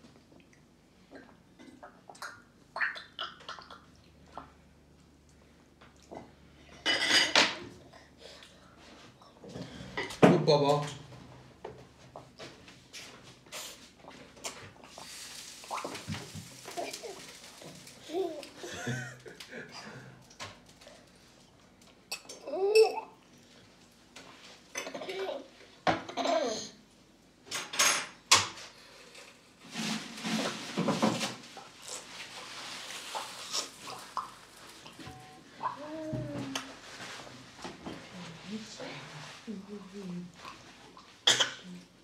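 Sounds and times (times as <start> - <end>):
tableware clattering on tray: 6.9 - 7.6
baby vocal sound: 35.6 - 36.7.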